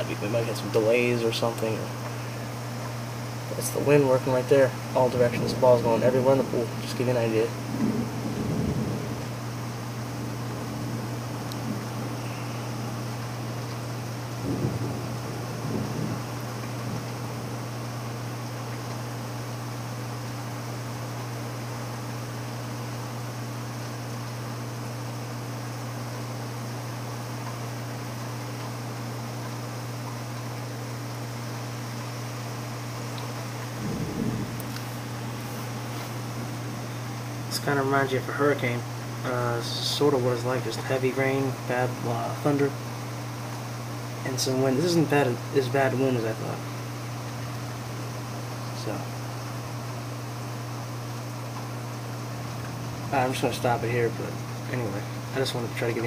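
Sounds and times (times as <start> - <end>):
heavy rain hiss: 0.0 - 56.0
steady low hum: 0.0 - 56.0
low thunder rumbles: 4.8 - 17.8, 33.6 - 38.0.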